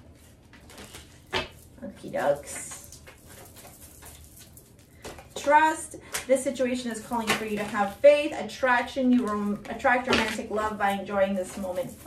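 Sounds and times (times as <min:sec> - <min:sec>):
cards being handled: 0:00.1 - 0:05.4.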